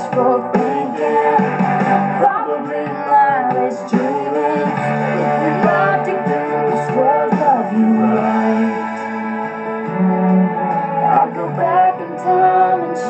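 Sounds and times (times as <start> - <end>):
guitar-backed pop ballad: 0.0 - 13.0.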